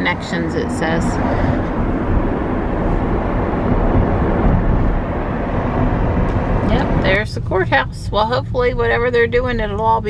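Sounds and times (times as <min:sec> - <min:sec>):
road and tyre noise inside car: 0:00.0 - 0:10.0.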